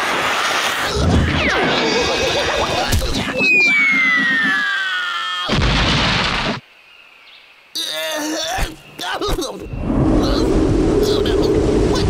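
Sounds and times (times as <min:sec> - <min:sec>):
descending cartoon whistle: 0:03.4 - 0:04.8
explosion-like crash: 0:05.5 - 0:06.6.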